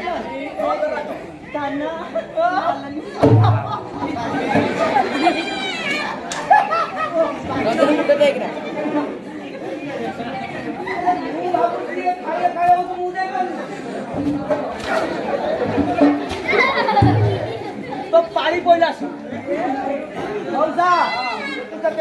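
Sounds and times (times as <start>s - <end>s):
overlapping voices talking: 0.0s - 22.0s.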